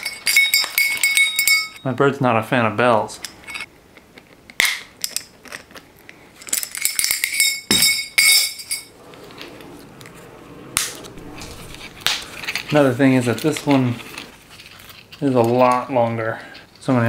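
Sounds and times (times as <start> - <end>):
small metal bell ringing: 0.0 - 1.9, 6.8 - 8.9.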